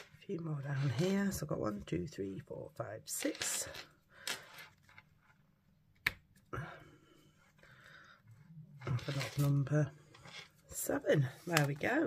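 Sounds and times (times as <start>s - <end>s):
soft rustle of card: 8.3s - 12.0s.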